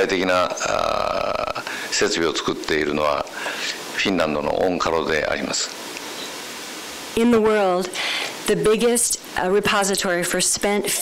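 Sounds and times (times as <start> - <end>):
man talking: 0.0 - 5.8.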